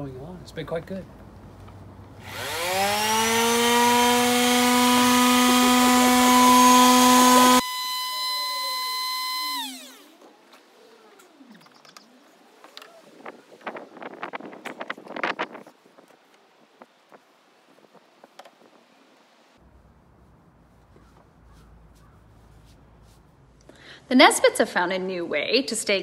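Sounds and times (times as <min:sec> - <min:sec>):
electric sander motor whine: 0:02.2 - 0:10.6
cloth rubbing: 0:20.2 - 0:23.6.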